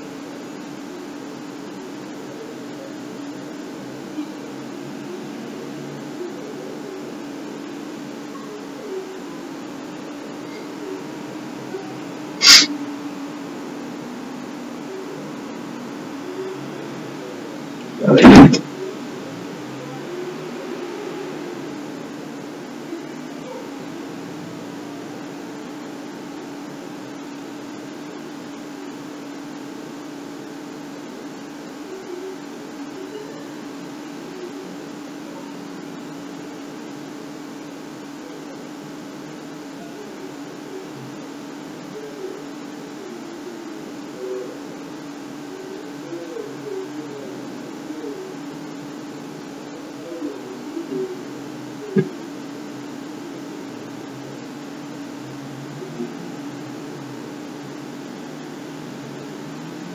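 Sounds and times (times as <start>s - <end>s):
steady low hum: 0.0s - 59.9s
loud brief burst of noise: 12.4s - 12.7s, 18.0s - 18.6s.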